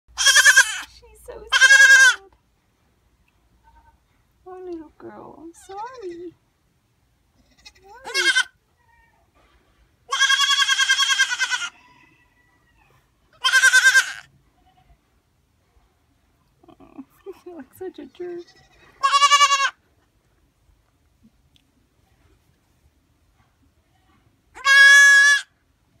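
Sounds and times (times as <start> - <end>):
goat kid bleating: 0.1 - 0.9, 1.5 - 2.2, 3.6 - 4.0, 5.6 - 6.3, 7.4 - 9.3, 10.1 - 11.8, 13.4 - 15.0, 18.3 - 19.8, 23.9 - 25.6.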